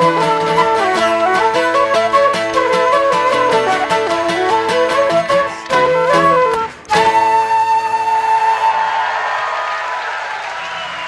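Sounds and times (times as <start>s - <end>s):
folk dance music on wind instrument: 0.0s - 9.1s
audience applause and cheering: 5.6s - 11.0s.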